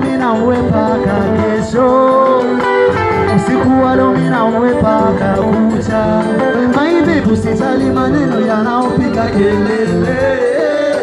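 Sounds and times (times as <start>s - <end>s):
electric guitar playing: 0.0s - 11.0s
person singing: 0.0s - 11.0s.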